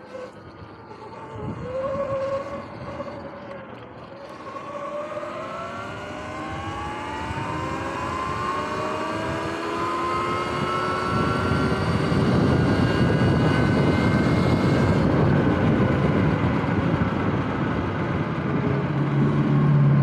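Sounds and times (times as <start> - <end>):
electric motor whining: 0.0 - 17.8
wind noise on microphone: 0.0 - 20.0.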